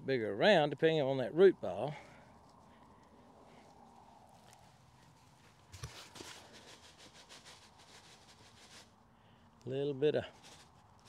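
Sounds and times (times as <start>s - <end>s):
trowel scratching potting soil: 5.6s - 9.0s, 10.2s - 11.0s.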